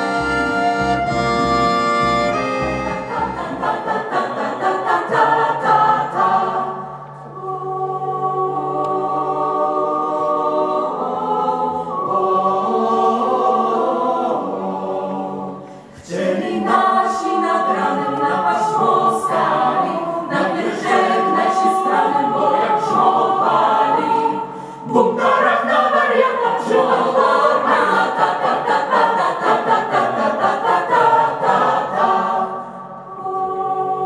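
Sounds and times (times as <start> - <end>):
mixed choir singing: 0.0 - 34.0.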